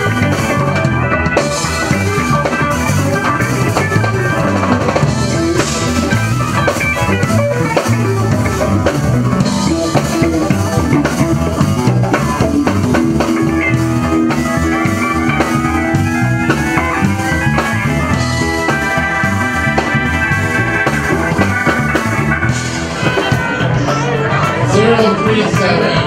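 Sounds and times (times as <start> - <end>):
drums: 0.0 - 26.0
electric guitars playing: 0.0 - 26.0.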